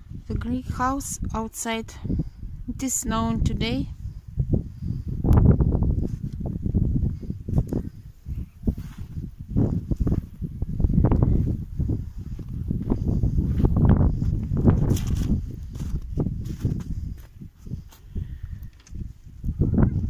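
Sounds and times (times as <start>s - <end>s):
wind buffeting microphone: 0.0s - 20.0s
footsteps in snow: 8.6s - 10.4s, 11.4s - 18.2s.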